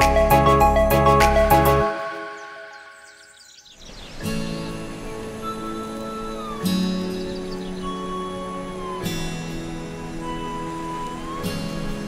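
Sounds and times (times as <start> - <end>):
background music held notes: 0.0 - 12.0
high bird-like chirps: 1.4 - 4.5, 5.4 - 12.0.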